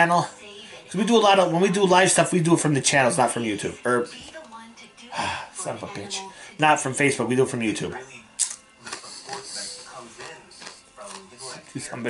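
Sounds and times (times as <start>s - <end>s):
crackly chewing: 8.4s - 11.9s.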